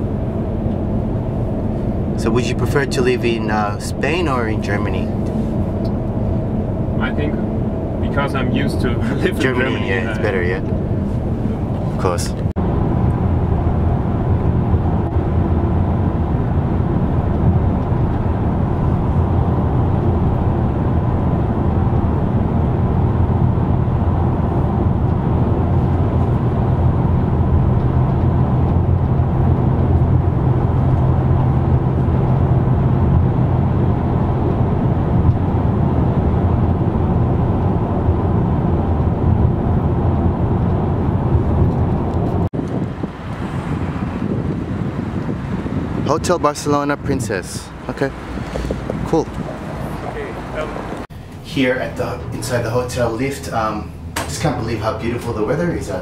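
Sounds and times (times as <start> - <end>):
car interior road and engine drone: 0.0 - 56.0.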